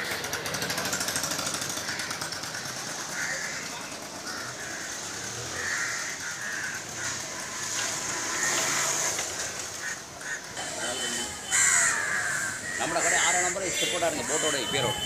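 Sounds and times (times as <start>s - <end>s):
distant voices: 0.0s - 15.0s.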